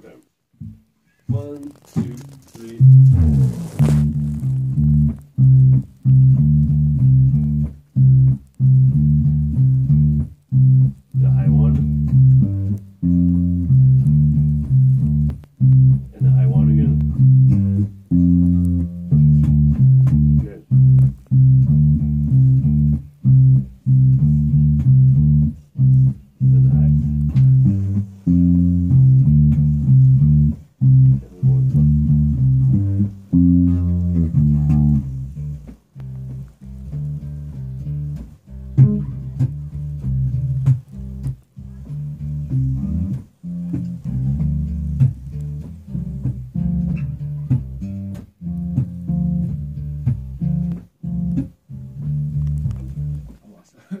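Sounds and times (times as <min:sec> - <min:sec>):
electric bass guitar riff: 0:00.6 - 0:53.4.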